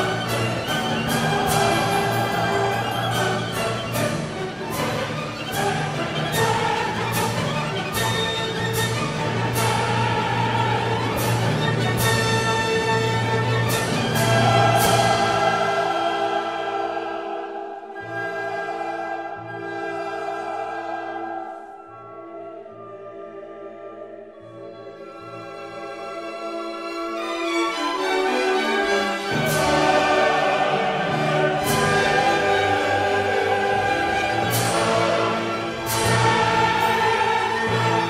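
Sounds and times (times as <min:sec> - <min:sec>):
choir singing sustained chords: 0:00.0 - 0:26.8, 0:27.9 - 0:38.0.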